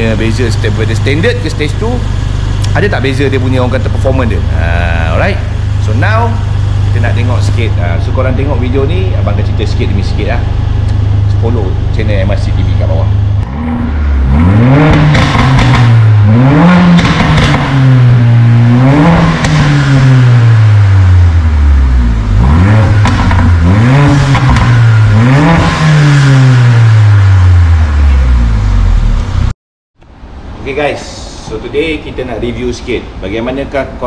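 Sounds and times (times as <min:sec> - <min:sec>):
car engine revving: 0:00.0 - 0:29.5.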